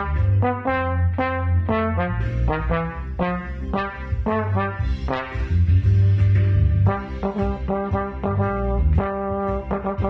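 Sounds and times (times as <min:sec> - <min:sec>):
slide trombone melody: 0:00.0 - 0:06.0, 0:06.8 - 0:10.0.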